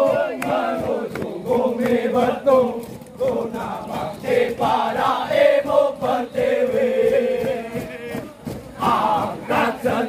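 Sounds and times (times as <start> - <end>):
men singing marching chant: 0.0 - 10.0.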